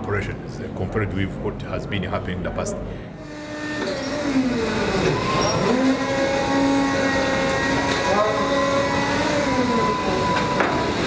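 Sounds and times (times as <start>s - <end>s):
forklift engine revving: 3.2s - 11.0s.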